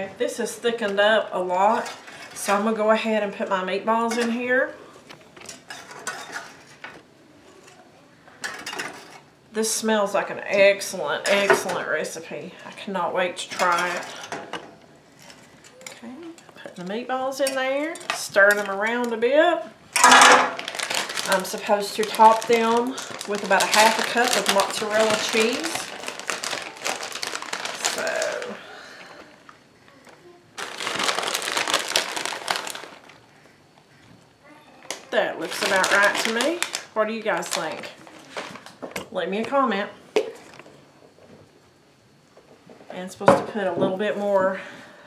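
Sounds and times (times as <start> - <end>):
utensils clinking on cookware: 5.4 - 6.7
plastic bag crinkling: 20.0 - 33.5, 34.8 - 38.8.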